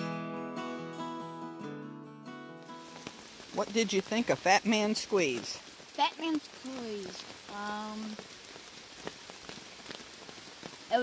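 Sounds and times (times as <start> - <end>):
raindrops tapping on a tarp: 2.6 - 11.0
boy speaking: 6.0 - 8.2.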